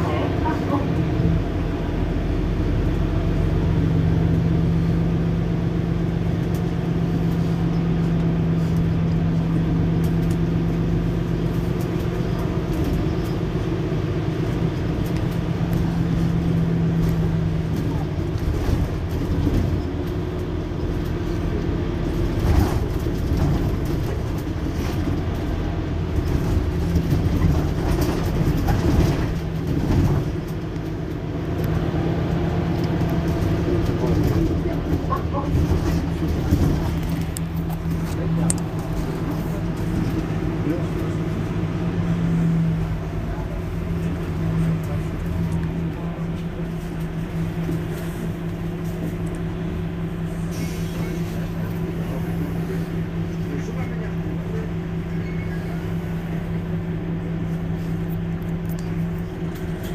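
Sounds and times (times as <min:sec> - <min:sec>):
bus engine idling: 0:00.0 - 0:59.9.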